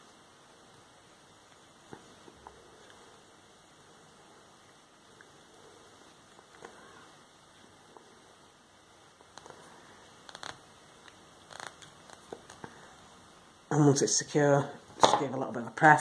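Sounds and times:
low steady hiss: 0:00.0 - 0:16.0.

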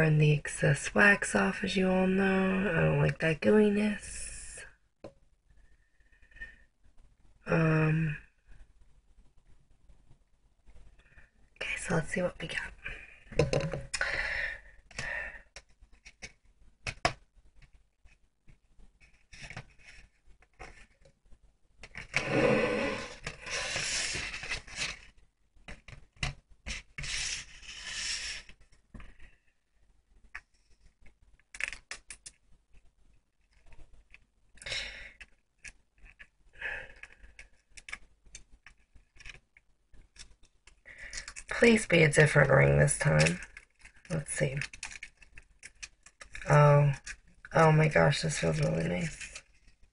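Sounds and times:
packet rustling and tearing: 0:21.8 - 0:25.2, 0:40.0 - 0:41.6, 0:43.2 - 0:47.5
packet scraping: 0:21.8 - 0:25.2, 0:40.0 - 0:49.9.

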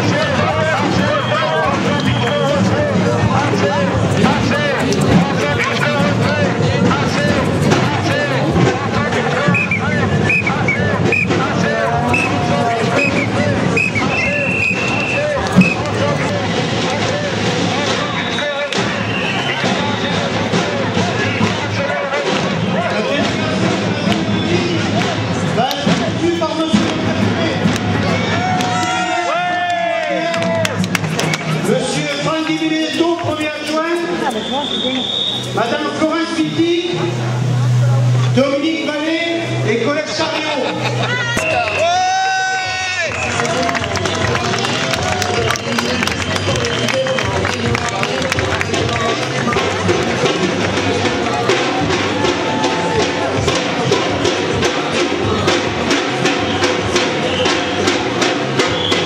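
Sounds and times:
crowd voices: 0:00.0 - 0:59.0
music: 0:00.0 - 0:59.0.

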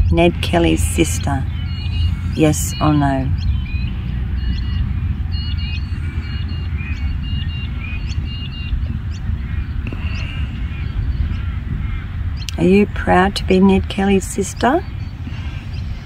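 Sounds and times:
small birds chirping: 0:00.0 - 0:16.0
wind rumbling on microphone: 0:00.0 - 0:16.0.

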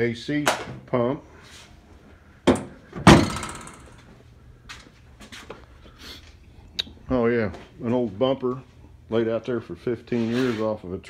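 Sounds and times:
car hood slamming shut: 0:03.0 - 0:03.8.

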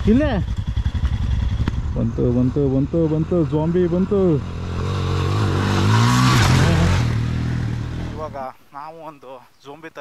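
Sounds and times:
motorcycle accelerating past: 0:00.0 - 0:08.4
voices: 0:01.9 - 0:04.6, 0:07.8 - 0:10.0.

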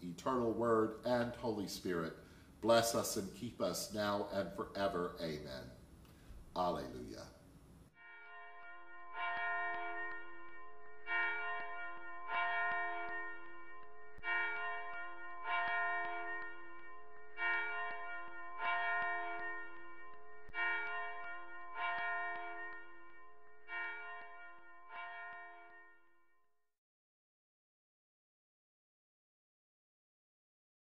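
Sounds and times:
bell struck and ringing: 0:08.0 - 0:26.3.

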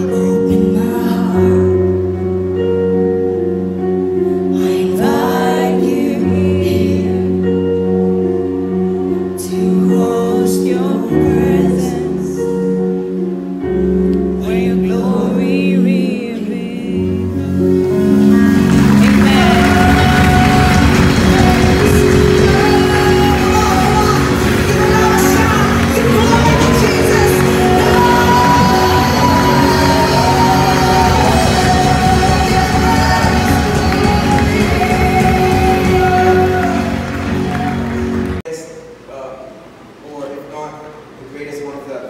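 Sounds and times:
woman singing into microphone: 0:00.0 - 0:02.1, 0:04.5 - 0:07.8, 0:09.3 - 0:12.8, 0:14.2 - 0:17.7, 0:18.3 - 0:38.2
electric guitar: 0:00.0 - 0:38.4
drums: 0:17.7 - 0:38.4.

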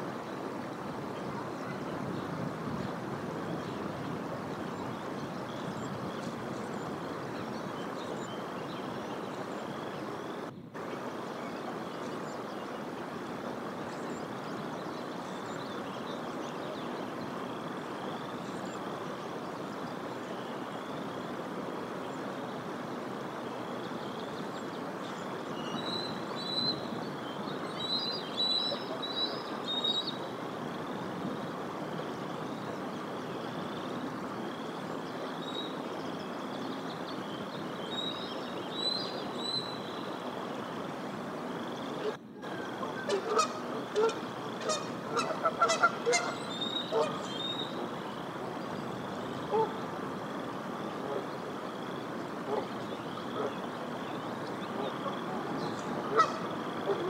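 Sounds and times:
steady background hiss: 0:00.0 - 0:57.0
geese honking: 0:42.0 - 0:47.3, 0:49.5 - 0:49.8, 0:56.0 - 0:57.0.

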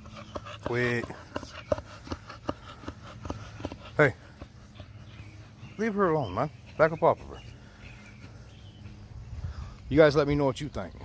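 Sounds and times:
dogs sniffing: 0:00.0 - 0:10.2.

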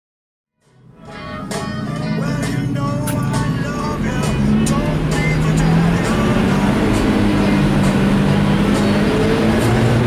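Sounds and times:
music playing: 0:00.6 - 0:10.0
race car engine idling and revving: 0:00.8 - 0:10.0.

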